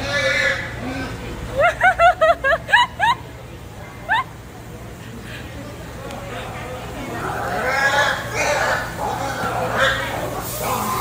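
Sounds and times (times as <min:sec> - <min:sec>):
wild boar squealing: 0:00.0 - 0:01.2, 0:07.2 - 0:11.0.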